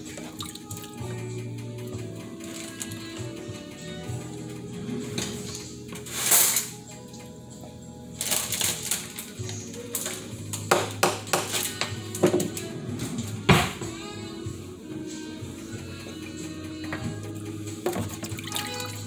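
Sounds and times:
background music: 0.0 - 19.0
dishes clinking in sink: 17.8 - 19.0.

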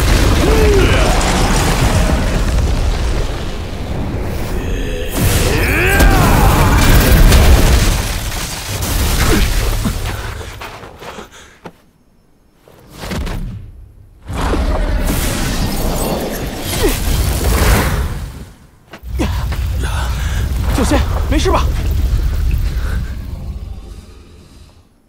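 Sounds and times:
deep rumbling booms: 0.0 - 10.0, 19.1 - 24.8
stone shattering and crumbling: 5.2 - 10.2.

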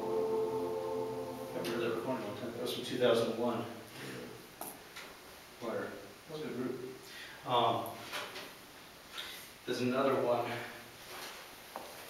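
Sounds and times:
indistinct person's voice: 0.0 - 2.6.

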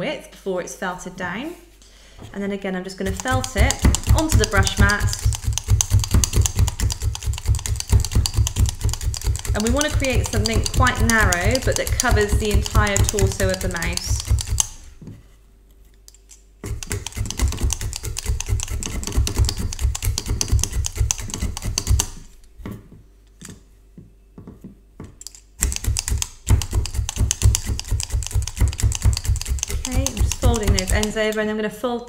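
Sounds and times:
felting needle tapping into brush: 3.0 - 14.8, 16.6 - 22.3, 25.6 - 31.4.

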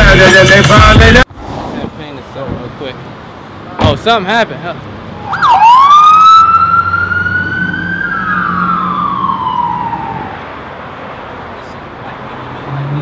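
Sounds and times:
police siren wailing: 5.2 - 10.5.

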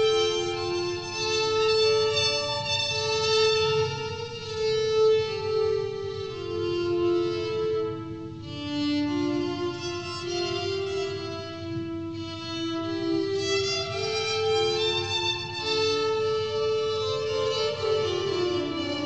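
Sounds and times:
electric violin held notes: 0.0 - 19.0.

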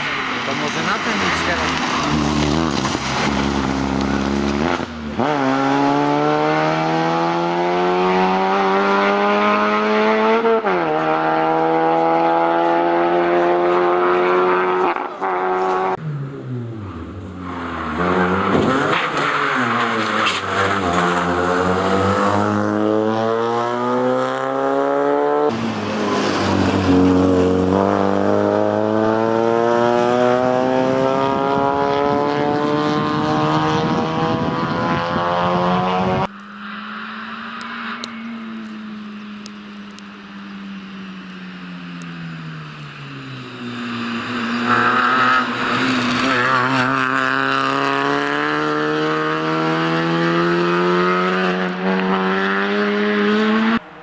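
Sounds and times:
rally car engine accelerating: 0.0 - 40.5, 42.3 - 54.0.

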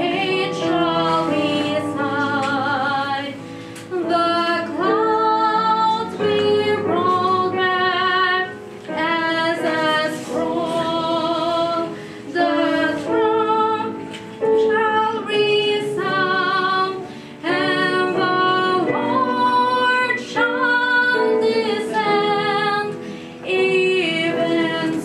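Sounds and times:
woman singing a sacred song: 14.6 - 25.0.

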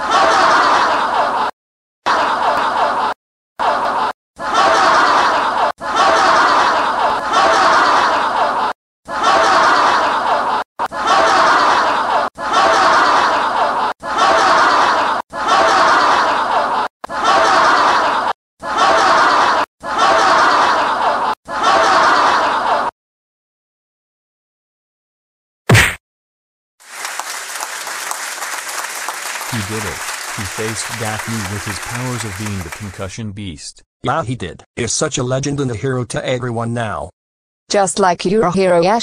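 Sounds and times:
group of people laughing: 0.0 - 1.5, 2.1 - 22.9, 27.2 - 33.1.

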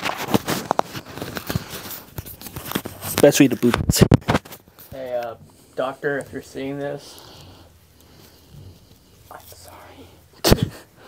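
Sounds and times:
handling clicks and rustles: 0.0 - 9.7.

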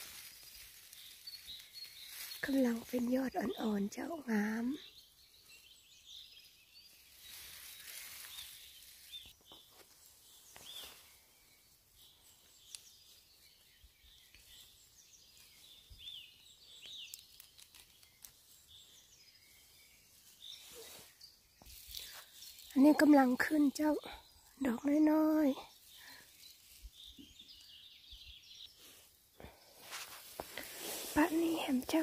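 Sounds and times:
small birds chirping: 0.0 - 32.0
soft rustles and clicks: 16.8 - 18.7, 29.8 - 32.0.

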